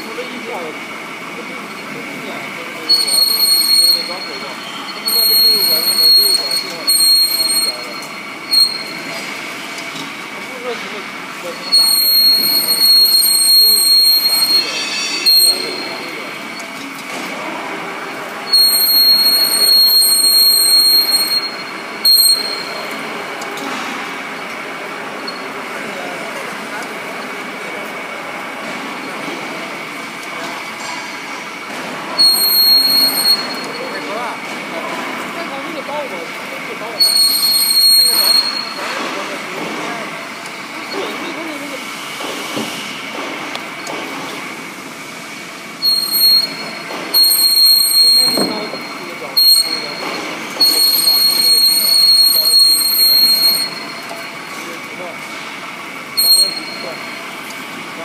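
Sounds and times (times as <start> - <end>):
pipe cutting machine whining: 0.0 - 28.0, 28.6 - 44.0, 45.3 - 58.0
shrill metal-on-metal squeal: 2.8 - 9.2, 11.5 - 16.7, 18.4 - 23.0, 32.1 - 34.3, 36.9 - 39.0, 45.8 - 54.5, 56.2 - 57.2.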